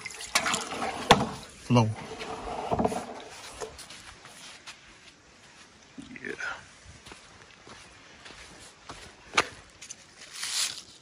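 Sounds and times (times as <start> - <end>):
handling noises on sandy ground: 0.0 - 11.0
leaves rustling: 6.6 - 11.0.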